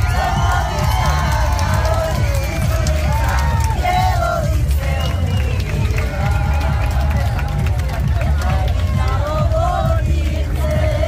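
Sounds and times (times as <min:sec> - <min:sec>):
background music: 0:00.0 - 0:11.0
crowd noise: 0:00.0 - 0:11.0
women singing together: 0:00.0 - 0:11.0.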